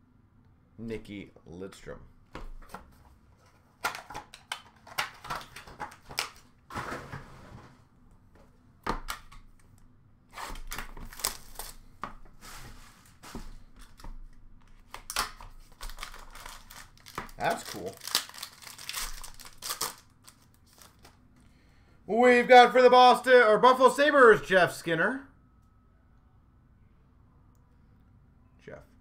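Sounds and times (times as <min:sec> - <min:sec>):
shrink wrap slit and torn: 0:10.4 - 0:11.8, 0:14.9 - 0:21.1
cardboard and plastic crinkling: 0:10.4 - 0:21.2.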